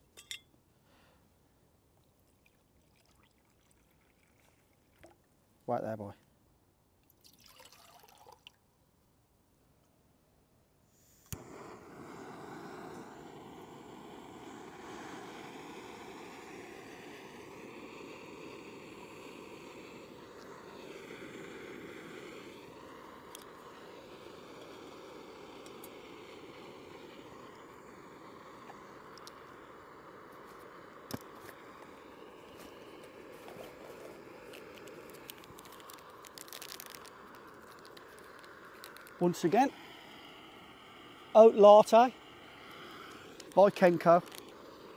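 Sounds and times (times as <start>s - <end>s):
gas burner hissing: 11.1s - 44.9s.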